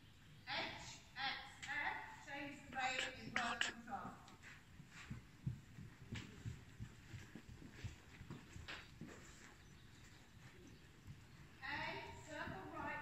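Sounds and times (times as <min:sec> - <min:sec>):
muffled pony hoofbeats: 0:03.0 - 0:13.0.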